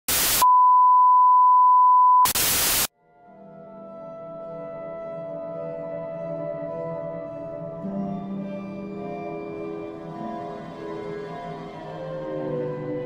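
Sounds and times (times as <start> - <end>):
television static hiss: 0.1 - 0.4, 2.3 - 2.9
soft sustained music: 3.0 - 13.0.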